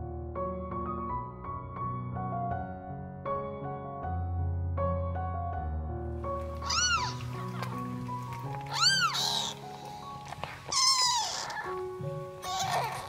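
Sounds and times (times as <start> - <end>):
soft piano music: 0.0 - 13.0
kittens mewing: 6.6 - 13.0.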